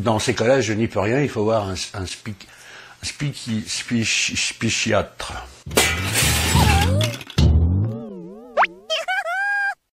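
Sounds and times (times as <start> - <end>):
crashing shattering noise: 5.7 - 7.8
wobbling cartoon tone: 6.5 - 9.8
held electronic tone: 7.8 - 9.0.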